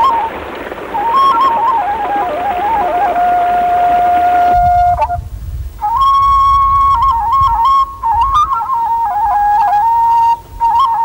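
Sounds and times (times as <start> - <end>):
low rumble: 0.0 - 6.9
solo flute melody: 0.0 - 11.0.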